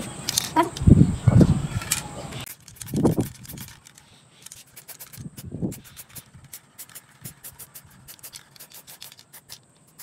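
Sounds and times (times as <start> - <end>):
spray can hissing puffs: 2.5 - 10.0.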